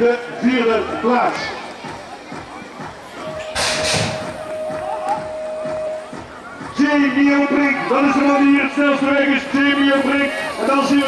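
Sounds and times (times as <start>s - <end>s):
metal gate slamming down: 3.4s - 4.5s
long electronic start tone: 4.2s - 6.1s.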